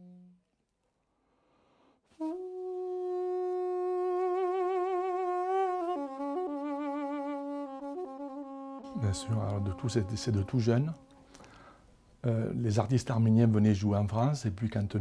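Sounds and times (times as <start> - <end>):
double-reed pipe melody: 0.0 - 0.5, 2.1 - 11.3.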